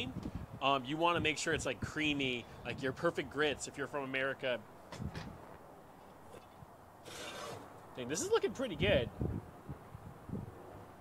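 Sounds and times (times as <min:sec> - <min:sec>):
pan scraping across oven floor: 0:07.1 - 0:07.7.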